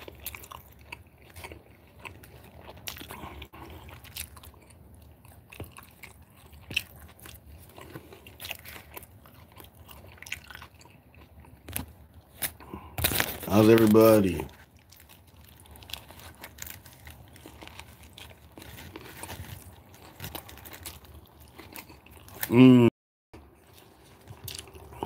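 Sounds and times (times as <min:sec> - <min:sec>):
person chewing food: 0:00.0 - 0:22.6, 0:23.4 - 0:25.0.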